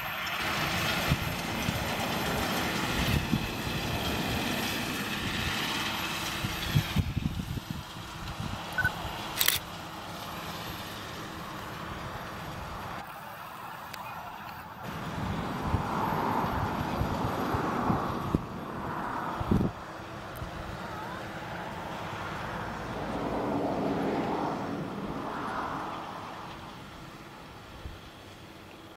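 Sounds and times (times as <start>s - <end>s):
tractor diesel engine under load: 0.0s - 28.9s.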